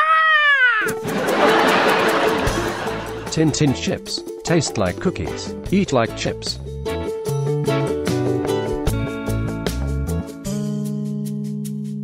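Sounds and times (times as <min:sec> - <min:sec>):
high meow-like cry: 0:00.0 - 0:00.9
music: 0:00.8 - 0:12.0.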